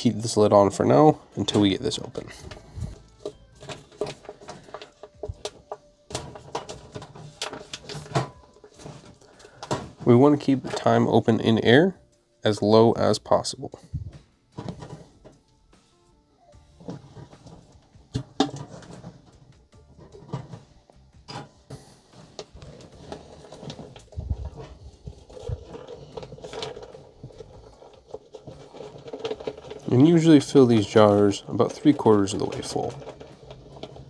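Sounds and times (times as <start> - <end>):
faint background music: 0.0 - 34.0.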